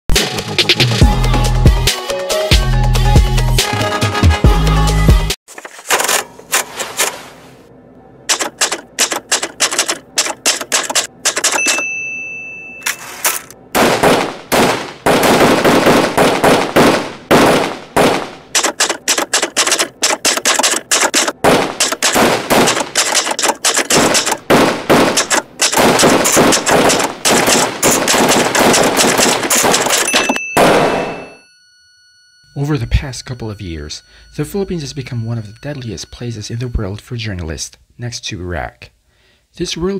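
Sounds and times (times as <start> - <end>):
typewriter keys striking: 8.3 - 12.0, 18.5 - 30.4
typewriter carriage bell: 8.3 - 13.6, 18.6 - 22.0, 22.7 - 24.4, 29.5 - 31.6.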